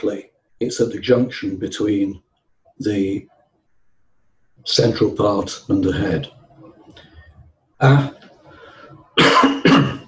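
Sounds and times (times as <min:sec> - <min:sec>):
man coughing: 0:09.2 - 0:10.0.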